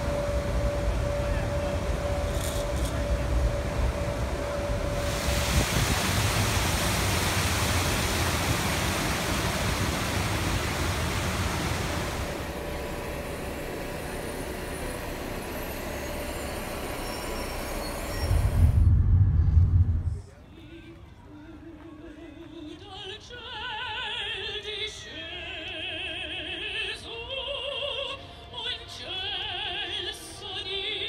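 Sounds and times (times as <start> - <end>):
city traffic noise: 0.0 - 7.4
faint steady hum: 0.0 - 20.4
low rumble: 17.9 - 20.3.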